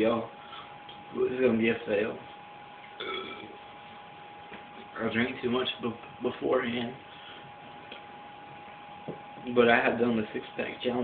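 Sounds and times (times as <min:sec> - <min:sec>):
man burping: 0:03.0 - 0:03.6.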